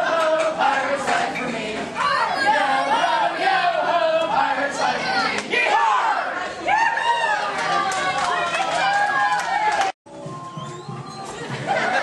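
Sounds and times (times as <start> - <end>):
crowd cheering and shouting: 4.8 - 12.0.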